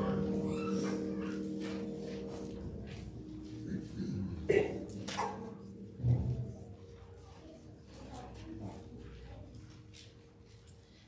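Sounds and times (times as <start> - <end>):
keyboard music chord: 0.0 - 6.8.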